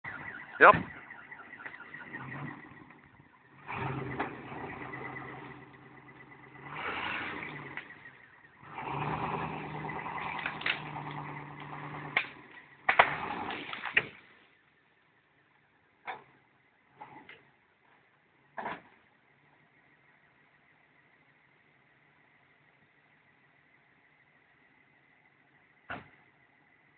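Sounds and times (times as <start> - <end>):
car engine revving under load: 0.0 - 14.2.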